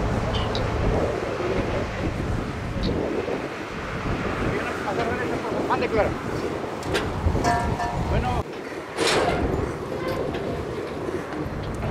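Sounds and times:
wind on microphone: 0.0 - 11.9.

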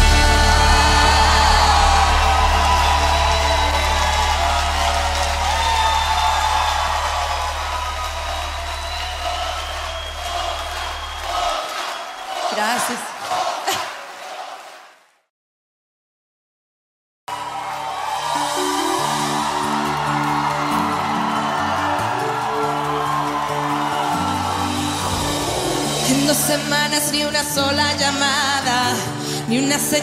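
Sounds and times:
pop song held chord: 0.0 - 5.8, 18.3 - 30.0
short bursts of voices: 12.4 - 14.0.

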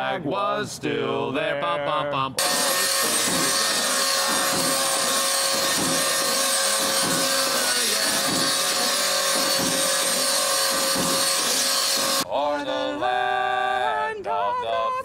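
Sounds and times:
angle grinder grinding metal: 2.4 - 12.3.

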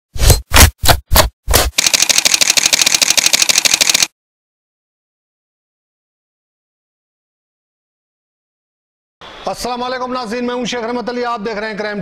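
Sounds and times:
rapid camera shutter clicks: 1.6 - 4.1.

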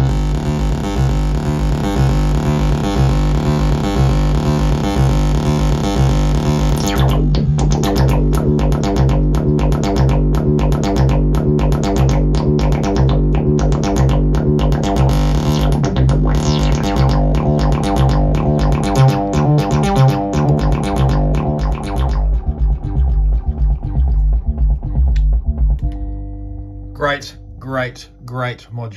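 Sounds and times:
steady held synth tone: 0.0 - 24.5, 25.8 - 28.9
fast high percussion ticks: 0.0 - 25.9
synthesizer bass line: 0.0 - 28.9.

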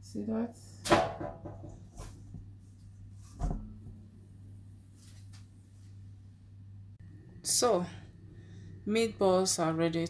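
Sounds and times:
steady low hum: 0.0 - 10.0
knocks from handling kitchen items: 0.9 - 2.1.

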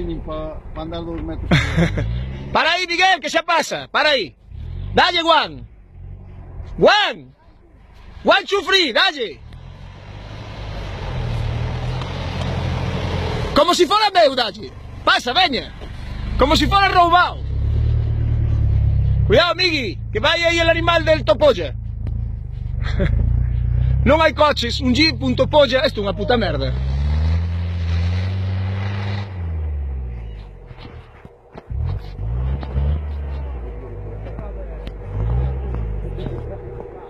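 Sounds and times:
vehicle engine pulling hard: 0.0 - 3.0, 7.8 - 37.0.

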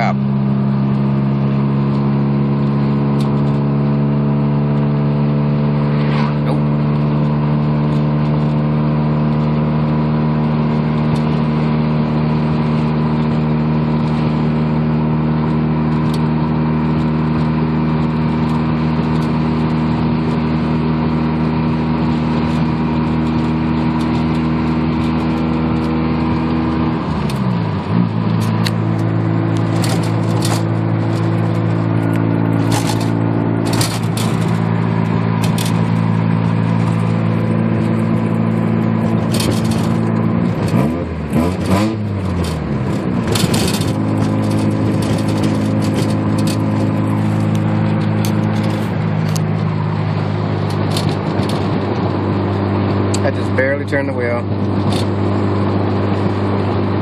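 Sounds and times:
rotary engine cruising: 0.0 - 57.0.

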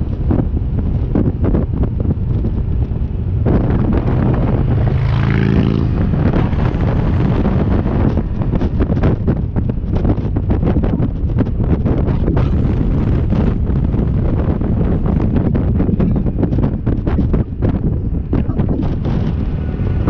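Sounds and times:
motorcycle engine and road rumble: 0.0 - 20.0
wind buffeting microphone: 0.0 - 20.0.

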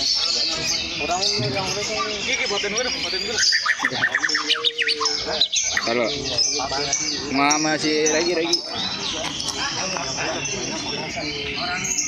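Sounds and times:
bird singing whistles and chirps: 0.0 - 12.0.

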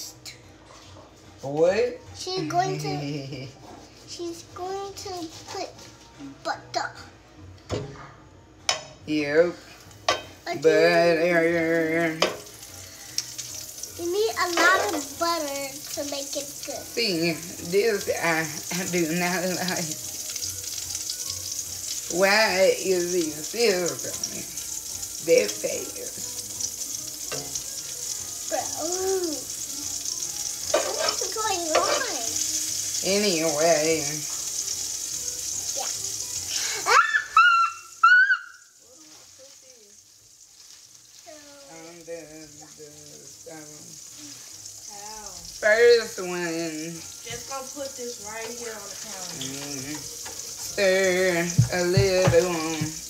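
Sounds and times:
butter sizzling in a frying pan: 0.0 - 7.6, 8.3 - 53.0
utensil knocking against pan: 51.5 - 53.0.

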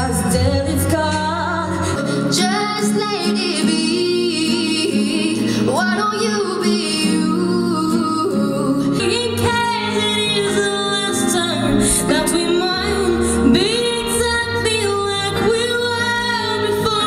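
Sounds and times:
guitar accompaniment: 0.0 - 17.0
woman singing: 0.0 - 17.0.

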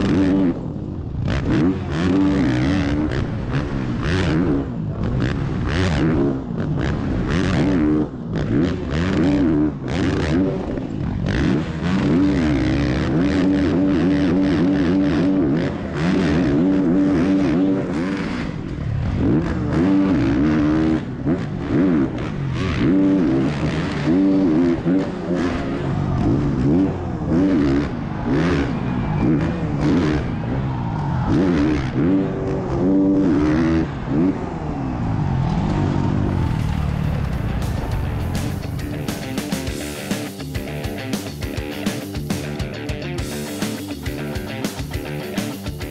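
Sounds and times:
motocross bike engine revving: 0.0 - 45.9.

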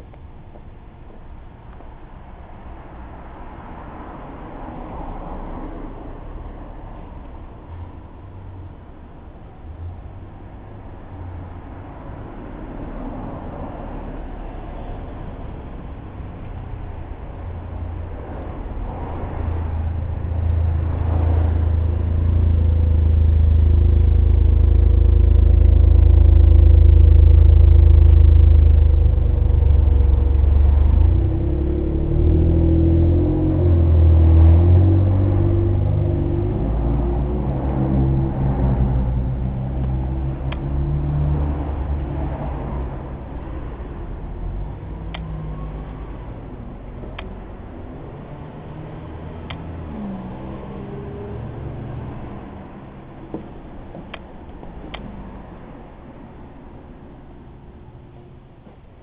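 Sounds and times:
small engine rumbling: 0.0 - 59.0.

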